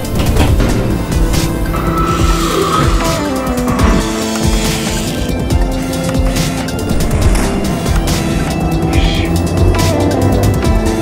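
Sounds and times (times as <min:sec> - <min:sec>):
sustained music tones: 0:00.0 - 0:11.0.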